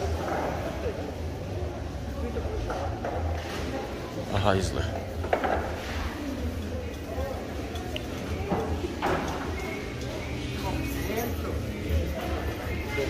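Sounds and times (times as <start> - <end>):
people talking: 5.8 - 13.0.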